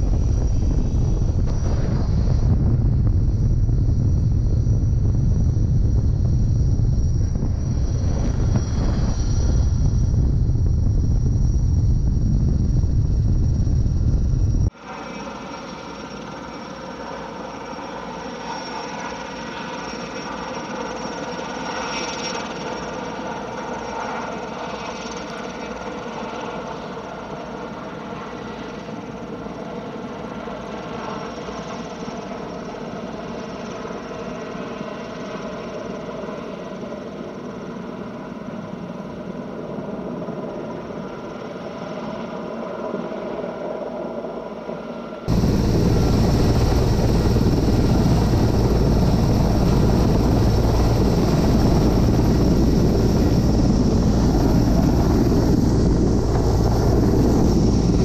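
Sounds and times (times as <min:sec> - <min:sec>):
helicopter hovering drone: 0:00.0 - 0:58.0.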